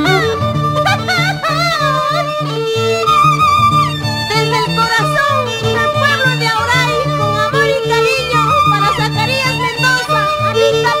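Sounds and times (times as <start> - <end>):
violin melody with wide vibrato: 0.0 - 11.0.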